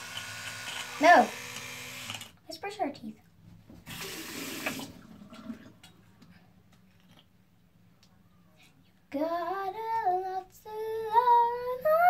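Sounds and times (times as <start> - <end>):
tap running: 3.7 - 4.9.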